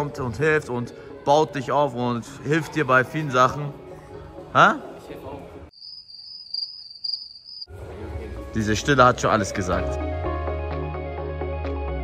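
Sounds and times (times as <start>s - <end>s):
crickets chirping: 5.7s - 7.7s.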